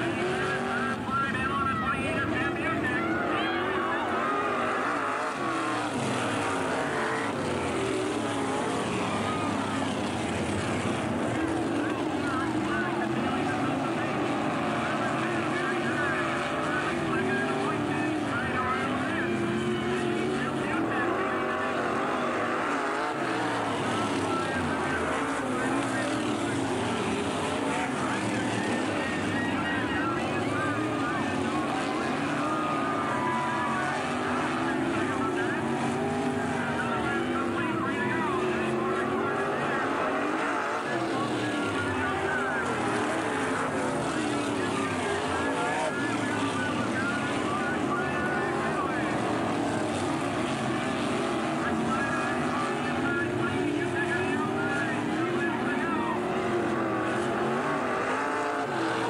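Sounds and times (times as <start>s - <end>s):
race car engines passing: 0.0s - 59.0s.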